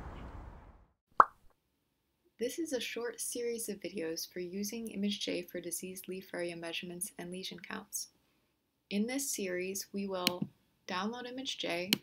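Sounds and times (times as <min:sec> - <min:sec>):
background noise: 0:00.0 - 0:12.0.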